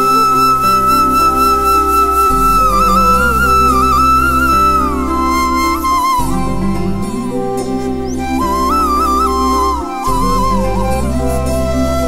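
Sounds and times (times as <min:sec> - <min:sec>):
flute melody: 0:00.0 - 0:12.0
sustained low accompaniment: 0:00.0 - 0:12.0.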